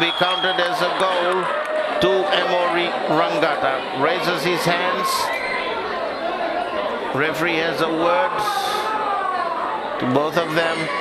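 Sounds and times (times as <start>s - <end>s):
crowd chattering and calling out: 0.0s - 11.0s
loud shout: 7.9s - 11.0s.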